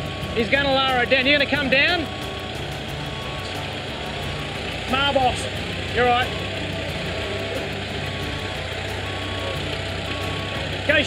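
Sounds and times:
diesel engine running: 0.0 - 11.0
reversing alarm beeps: 0.0 - 11.0.

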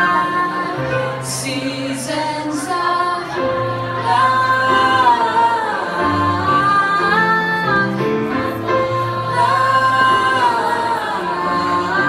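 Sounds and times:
vocal group singing in harmony: 0.0 - 12.0.

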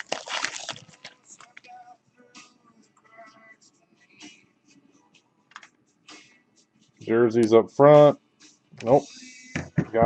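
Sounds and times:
wrapper crinkling: 0.0 - 1.8
faint background music with singing: 0.0 - 10.0.

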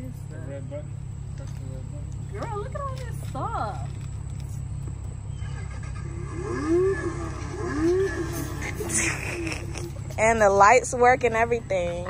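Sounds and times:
steady low rumble: 0.0 - 12.0
toy speaker engine revs: 5.4 - 10.1.

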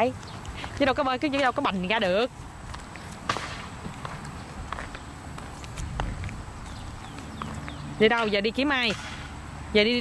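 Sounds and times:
toddler footsteps on asphalt: 0.0 - 10.0.

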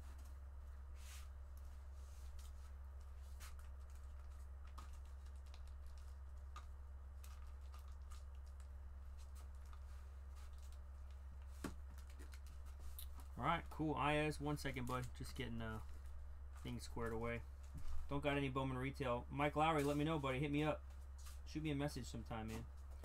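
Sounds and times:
low electrical hum: 0.0 - 23.0.

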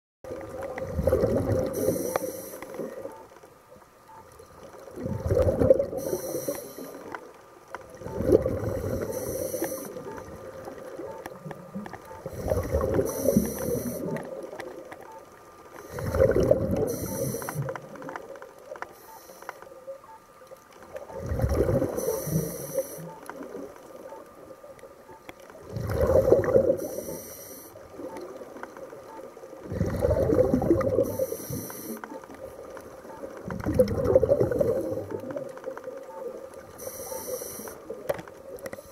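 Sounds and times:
exhaled bubbles rushing: 0.3 - 2.1, 4.9 - 6.2, 7.9 - 14.6, 15.9 - 18.1, 21.0 - 22.5, 25.6 - 26.9, 29.6 - 31.3, 33.2 - 35.6
regulator air hiss: 1.8 - 2.8, 6.0 - 7.1, 8.8 - 10.0, 12.4 - 14.1, 16.9 - 17.7, 21.9 - 23.1, 26.8 - 27.8, 31.0 - 32.0, 36.8 - 37.9.

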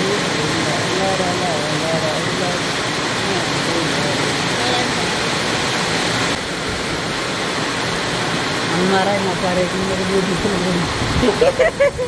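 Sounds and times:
heavy rain: 0.0 - 12.0.

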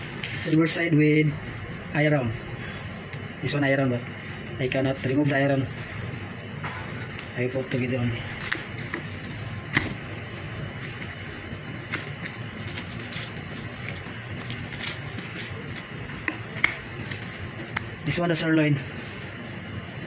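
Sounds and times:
room noise: 0.0 - 20.0.

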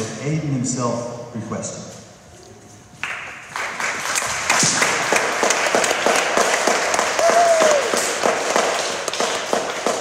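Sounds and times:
audience applauding: 3.0 - 9.2.

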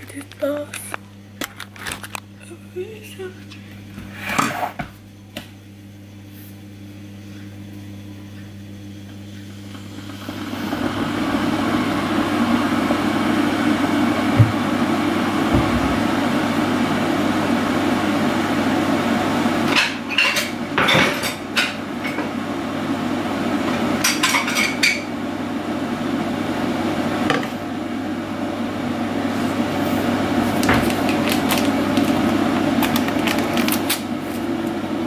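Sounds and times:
dishes clinking at a sink: 19.8 - 22.3.

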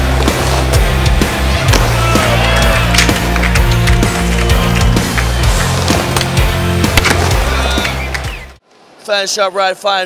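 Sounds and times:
music with deep bass line: 0.0 - 8.5.

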